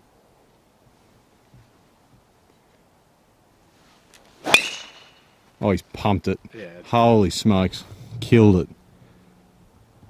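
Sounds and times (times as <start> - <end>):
golf club swish: 3.8 - 5.3
clubhead striking golf ball: 4.4 - 5.3.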